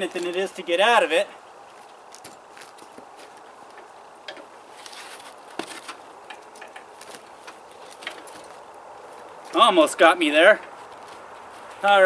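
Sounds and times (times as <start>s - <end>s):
rustling: 1.3s - 12.0s
clicks and light knocks: 5.5s - 8.6s.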